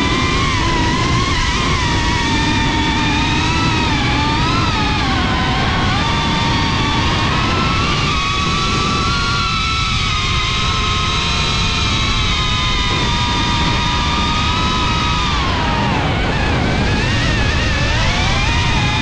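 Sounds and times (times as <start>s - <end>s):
propeller and wind rumble: 0.0s - 19.0s
quadcopter electric motors whining: 0.0s - 19.0s.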